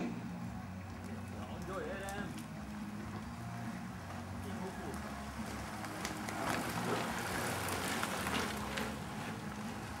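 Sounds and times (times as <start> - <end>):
bicycles riding past: 0.0 - 10.0.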